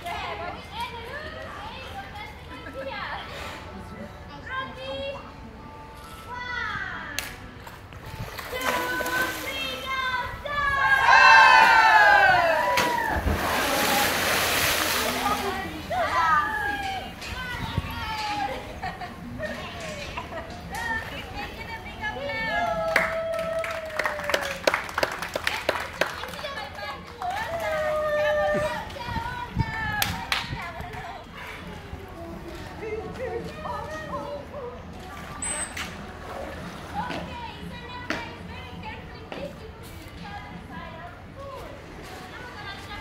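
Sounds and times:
crowd shouting and cheering: 10.1s - 13.9s
dolphin splashing into water: 12.5s - 15.7s
hand claps: 22.9s - 26.4s.

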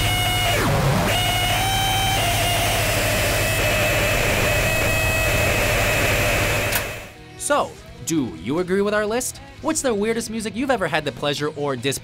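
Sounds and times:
distorted static noise: 0.0s - 7.2s
low hum: 0.0s - 8.5s.

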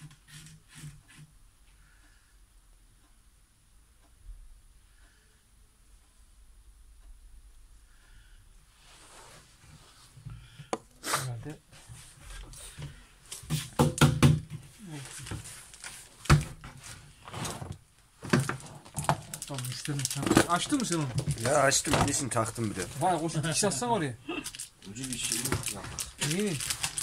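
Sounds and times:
knocks and thumps of handling: 11.8s - 23.0s.

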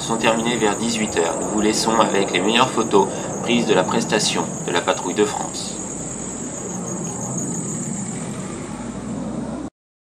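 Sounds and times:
high-pitched hiss: 0.0s - 9.4s
distant jet aircraft rumble: 0.0s - 9.7s.

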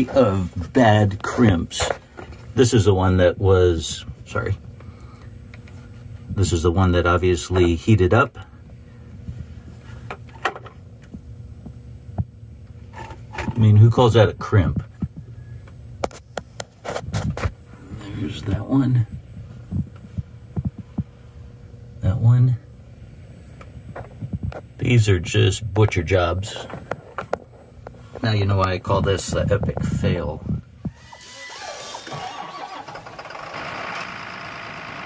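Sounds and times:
faint steady hum: 0.0s - 35.0s
engine cranking and running: 31.5s - 35.0s.

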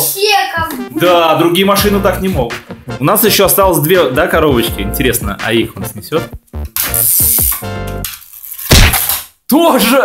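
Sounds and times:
music burst: 0.6s - 8.0s.

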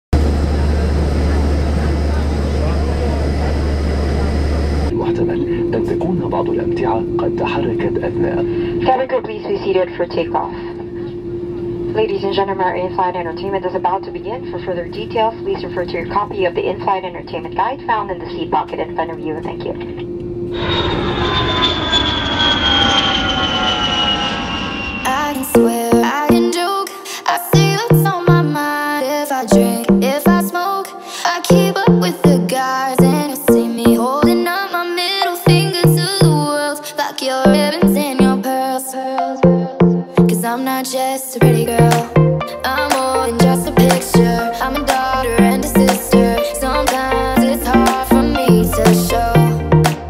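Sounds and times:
airliner cabin roar: 0.1s - 26.6s
steady hum: 0.2s - 26.8s, 41.4s - 50.0s
jet engines at takeoff power: 0.2s - 27.3s.

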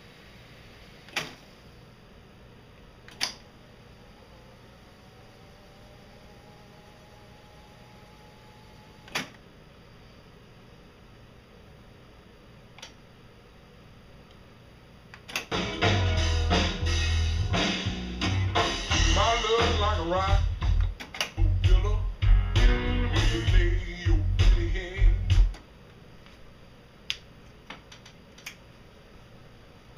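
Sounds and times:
tape hiss: 0.0s - 29.9s
tape deck mechanical clicks: 9.0s - 9.4s, 15.2s - 15.7s, 20.8s - 21.4s
recorded music with drums: 15.5s - 25.6s.

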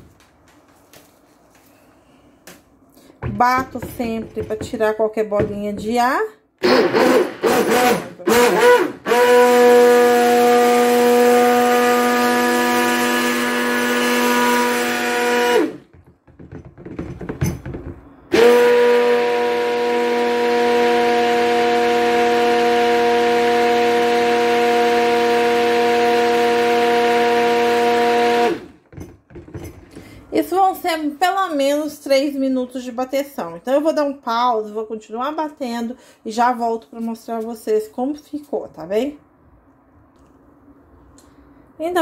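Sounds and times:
electric stick blender running: 6.6s - 16.0s, 18.3s - 28.8s.

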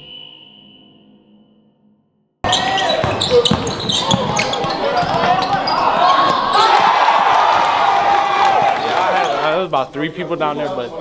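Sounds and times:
ringing tone: 0.0s - 2.2s
sneakers squeaking: 2.4s - 9.5s
basketball bouncing on hardwood: 3.0s - 7.7s.

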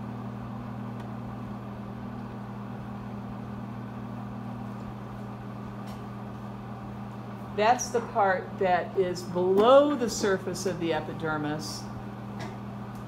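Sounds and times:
projector fan humming: 0.0s - 13.0s.

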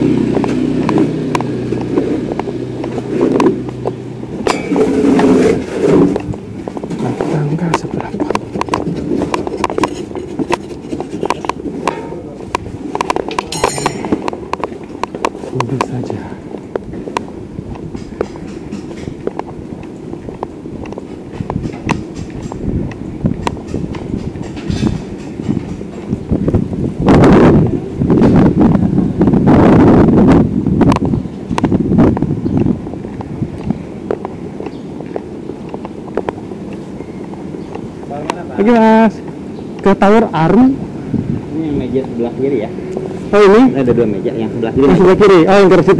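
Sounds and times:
motorbike engine rumbling: 0.0s - 45.9s
footsteps on tiles: 5.0s - 15.9s, 31.6s - 38.1s.

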